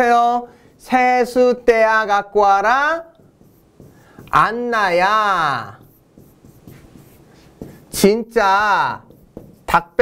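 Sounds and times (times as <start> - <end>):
writing tool scratching on board: 2.6 - 10.0
small taps of writing: 3.1 - 4.5, 5.8 - 8.0, 9.0 - 9.8.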